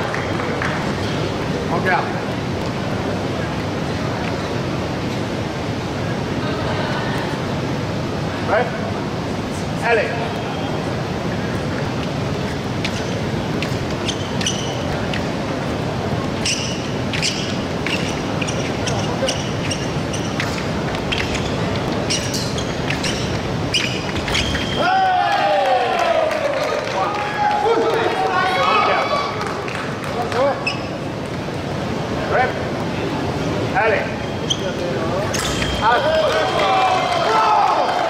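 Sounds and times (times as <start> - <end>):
shoes squeaking on floor: 12.3 - 24.9, 30.5 - 31.2, 34.1 - 36.5.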